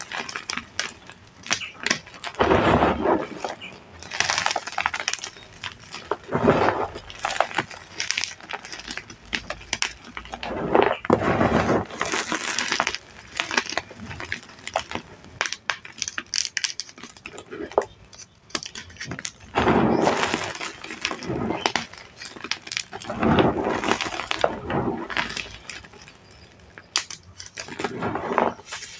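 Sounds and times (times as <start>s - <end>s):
chalk crunching and crumbling: 0.0s - 28.9s
chalk pieces cracking: 0.0s - 28.9s.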